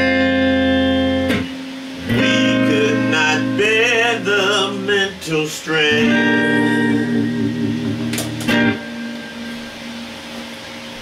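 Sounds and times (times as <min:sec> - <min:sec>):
amplifier hiss and hum: 0:00.0 - 0:11.0
electric guitar note: 0:00.0 - 0:11.0.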